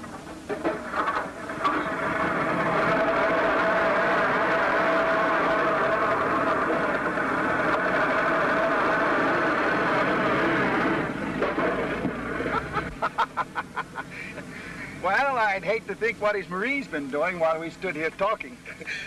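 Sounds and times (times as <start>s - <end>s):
truck engine running: 0.0s - 19.0s
engine starter clicks: 0.6s - 3.8s.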